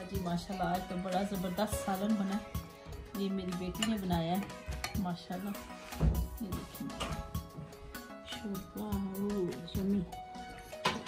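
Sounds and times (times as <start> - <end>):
wavering background melody: 0.0 - 11.0.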